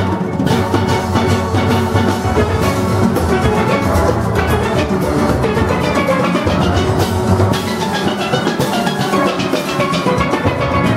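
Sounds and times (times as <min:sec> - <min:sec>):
percussion: 0:00.0 - 0:10.9
steel band playing: 0:00.0 - 0:10.9.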